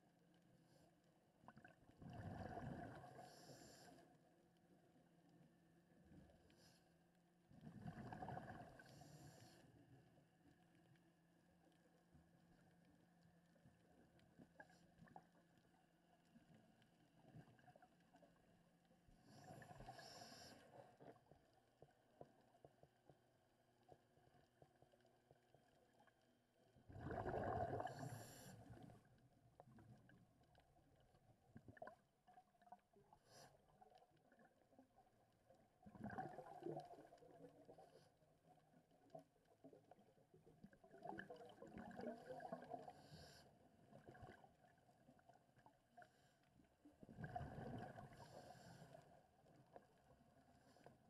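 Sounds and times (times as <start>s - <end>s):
underwater bubbles gurgling: 1.4s - 4.0s, 7.5s - 9.6s, 19.0s - 51.0s
muffled underwater breath bubbles: 2.0s - 4.1s, 7.6s - 9.6s, 26.9s - 29.0s, 47.1s - 49.2s.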